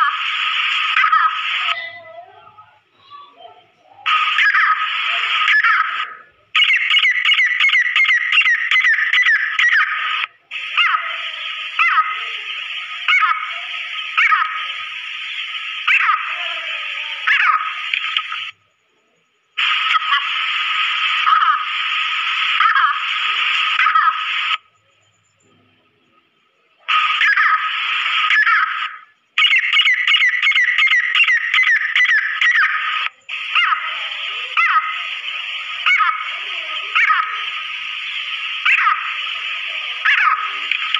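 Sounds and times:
recording hiss: 9.5 - 29.4, 31.8 - 40.9.

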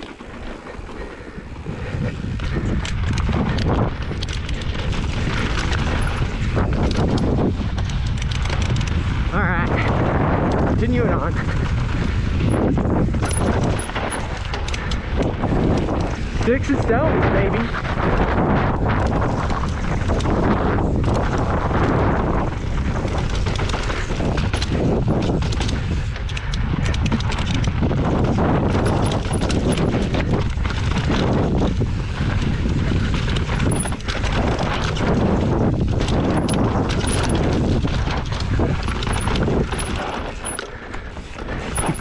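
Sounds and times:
bike tyres crunching over stones: 0.0 - 16.4, 17.6 - 42.0
wind rush: 0.0 - 42.0.

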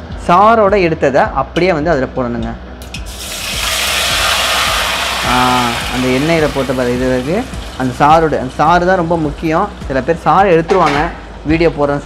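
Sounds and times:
hot oil sizzling: 2.8 - 11.4.

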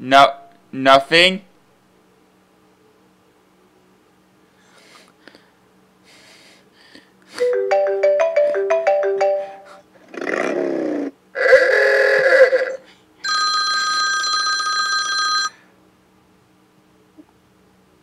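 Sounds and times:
electronic ringtone beeps: 7.4 - 9.8
steady ringing tone: 7.4 - 9.8, 13.2 - 15.6.

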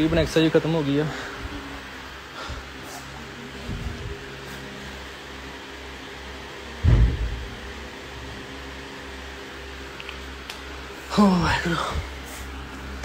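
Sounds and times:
ventilation hum: 0.0 - 13.0
loud low thump: 6.8 - 7.5.

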